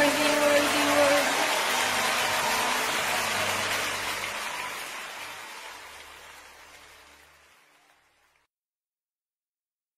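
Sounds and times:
crowd clapping: 0.0 - 8.5.

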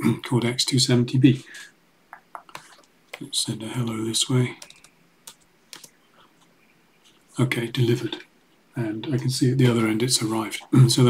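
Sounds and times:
computer keyboard keystrokes: 4.6 - 6.0.

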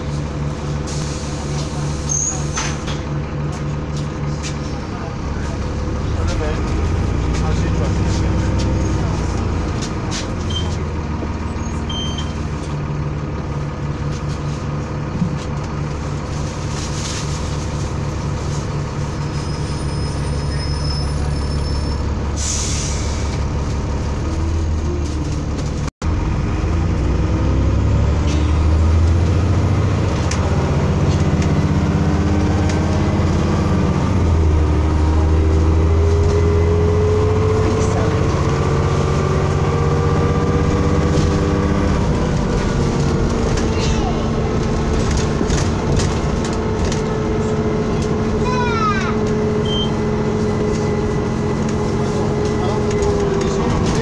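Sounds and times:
bus diesel engine running: 0.0 - 54.0.

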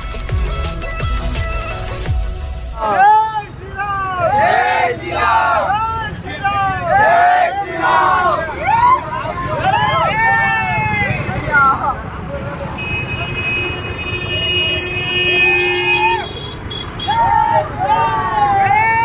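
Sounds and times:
men shouting chants: 2.8 - 9.0
vehicle horn: 12.8 - 17.2.

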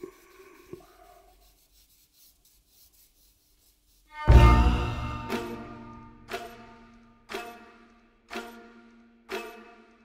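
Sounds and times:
charcoal scratching on paper: 0.0 - 4.8.

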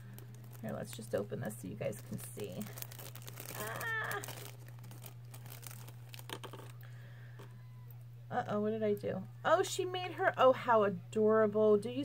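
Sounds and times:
plastic wrapping crinkling: 0.0 - 7.5
low electrical hum: 0.0 - 12.0.

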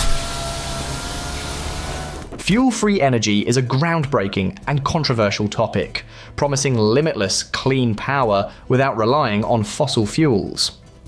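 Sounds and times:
generator whirring with whine: 0.0 - 2.4.

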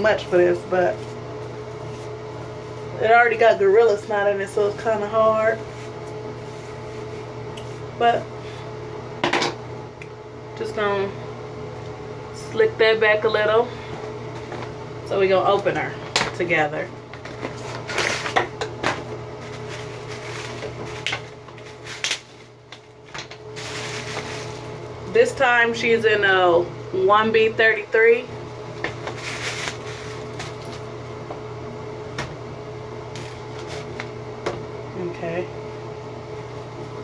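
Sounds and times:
ventilation fan humming: 0.0 - 37.0
plastic packaging crinkling: 17.2 - 18.7, 19.4 - 25.0, 28.9 - 30.9.

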